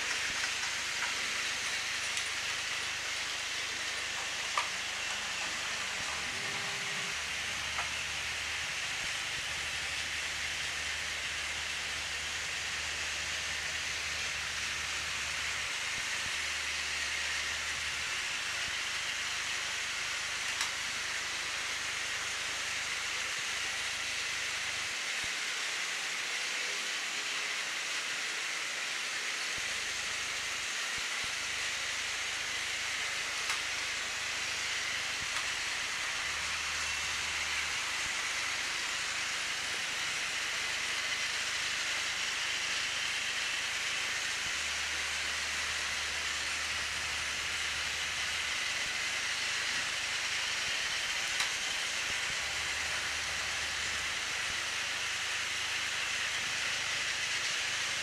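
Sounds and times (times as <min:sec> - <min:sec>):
toy train motors whirring: 0:00.0 - 0:58.0.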